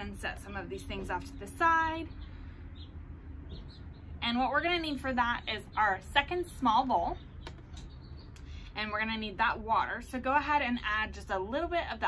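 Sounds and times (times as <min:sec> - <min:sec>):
low background rumble: 0:00.0 - 0:12.0
faint bird chirps: 0:06.5 - 0:08.7.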